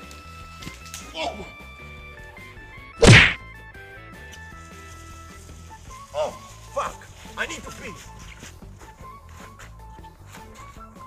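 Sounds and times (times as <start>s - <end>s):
faint background music: 0.0s - 11.0s
sharp whack sound effect: 3.0s - 3.4s.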